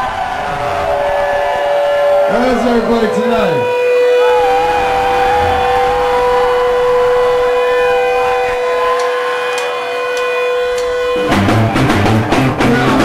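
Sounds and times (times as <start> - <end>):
crowd noise: 0.0 - 13.0
electric guitar feedback: 0.2 - 13.0.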